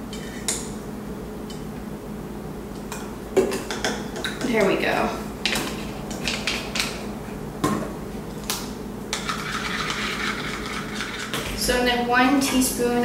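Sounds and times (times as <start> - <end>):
spoon stirring: 9.1 - 11.5.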